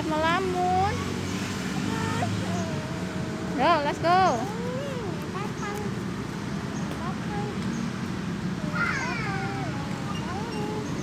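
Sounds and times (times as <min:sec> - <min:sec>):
outdoor background noise: 0:00.0 - 0:11.0
high-pitched voice: 0:01.8 - 0:03.6, 0:04.4 - 0:05.9.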